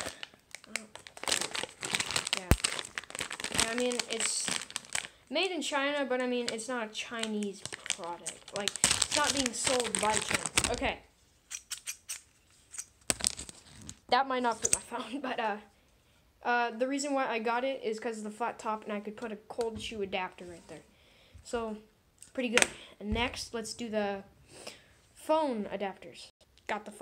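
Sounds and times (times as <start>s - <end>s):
plastic bag crinkling: 0.0s - 11.0s, 12.8s - 14.8s.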